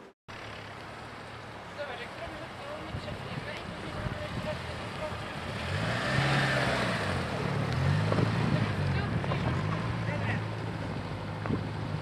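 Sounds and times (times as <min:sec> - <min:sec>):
car engine revving: 0:04.4 - 0:12.0.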